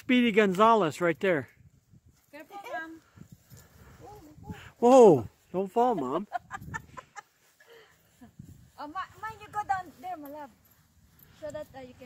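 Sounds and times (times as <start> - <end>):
woman laughing: 5.8 - 8.4.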